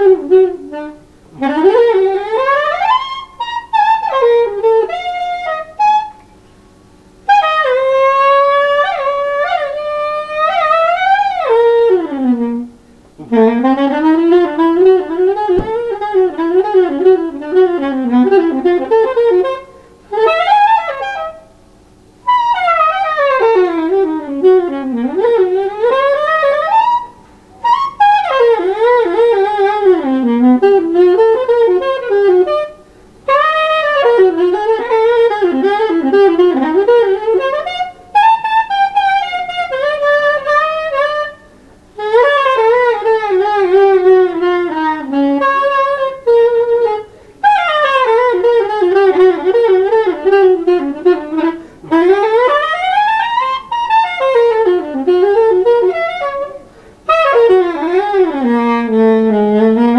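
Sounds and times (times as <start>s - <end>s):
soprano saxophone improvising: 0.0s - 21.4s, 22.1s - 59.9s.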